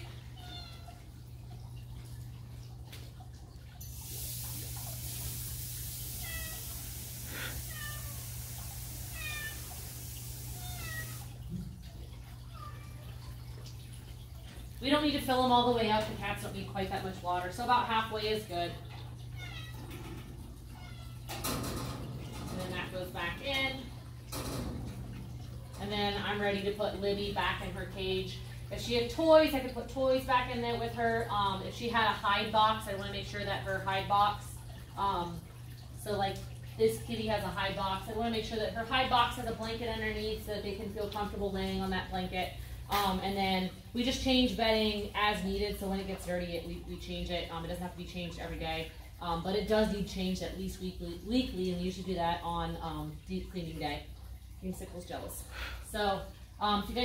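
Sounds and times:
faucet running into metal bowl: 0:00.0 - 0:57.0
cats meowing: 0:06.1 - 0:11.4, 0:12.4 - 0:13.3, 0:19.2 - 0:20.0, 0:20.6 - 0:21.4
water bowl scraping in metal cage: 0:19.3 - 0:26.2.

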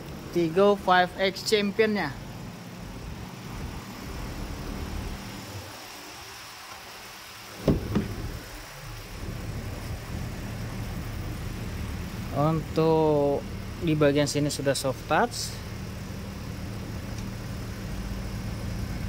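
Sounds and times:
car engine idling: 0:00.0 - 0:19.0
car door clicks: 0:07.6 - 0:08.5.

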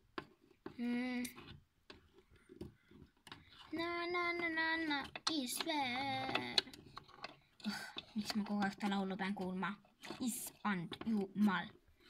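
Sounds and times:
plastic clicks and taps: 0:04.3 - 0:10.2.

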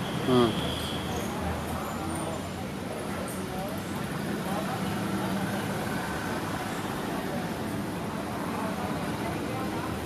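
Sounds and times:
passing traffic rumble: 0:00.0 - 0:10.0.

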